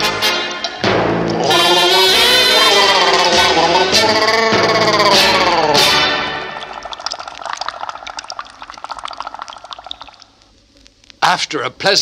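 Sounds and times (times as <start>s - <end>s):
underwater bubbling: 5.8s - 10.5s.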